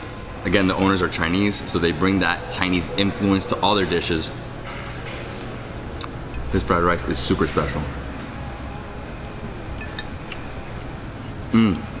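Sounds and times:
murmur of room noise: 0.0s - 12.0s.

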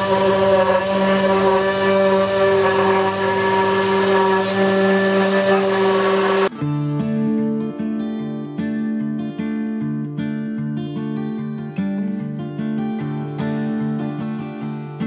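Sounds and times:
cnc router spindle whine: 0.0s - 6.5s
router bit cutting wood: 0.0s - 6.5s
acoustic guitar music: 0.0s - 15.0s.

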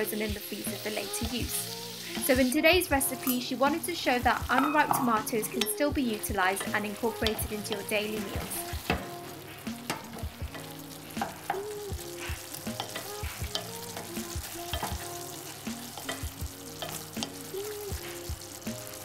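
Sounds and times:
tomatoes sizzling in oil: 0.0s - 19.0s.

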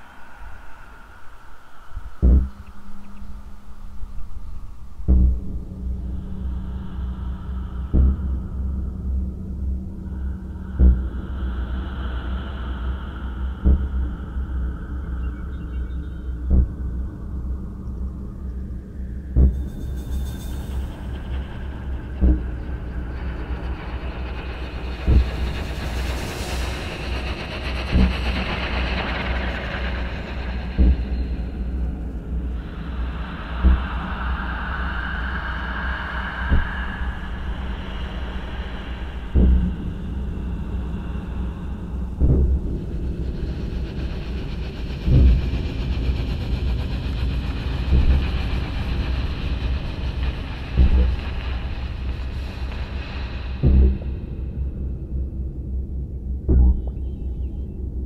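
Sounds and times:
low rumbling drone: 0.0s - 58.0s
hissing layers: 19.8s - 54.5s.

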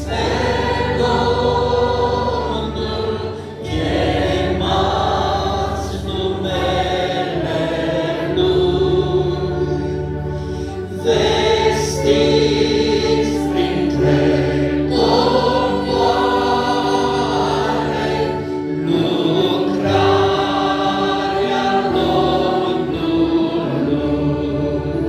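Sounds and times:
accordion chords: 0.0s - 25.0s
mixed choir singing a hymn: 0.0s - 25.0s.

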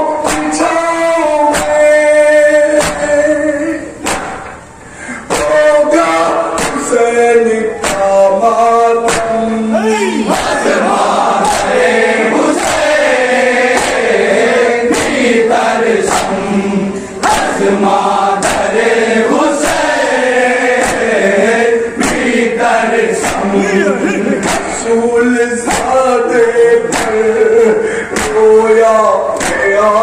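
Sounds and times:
men chanting together: 0.0s - 4.5s, 5.3s - 30.0s
hands slapping on chests: 4.0s - 4.6s, 7.8s - 8.1s, 13.7s - 14.0s, 20.8s - 21.1s, 22.0s - 22.3s, 23.2s - 23.5s, 24.4s - 24.8s, 25.7s - 26.0s, 26.9s - 27.2s, 28.2s - 28.4s.

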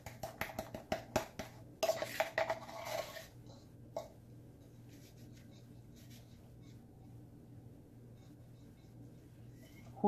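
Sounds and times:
low steady hum: 0.0s - 10.0s
spoon scraping powder: 1.8s - 6.9s, 8.1s - 10.0s.

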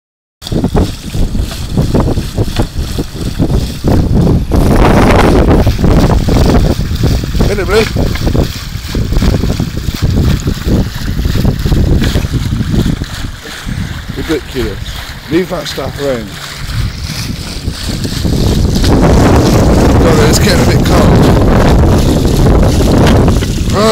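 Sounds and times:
water splashing: 0.4s - 23.9s
wind buffeting microphone: 0.4s - 23.9s.

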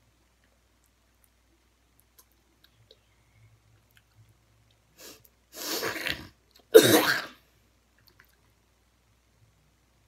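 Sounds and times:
girl coughing: 6.7s - 7.4s.

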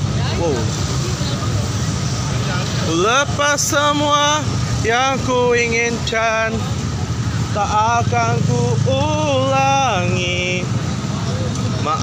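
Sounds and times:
faint crowd voices: 0.0s - 12.0s
motor scooters passing: 0.0s - 12.0s.

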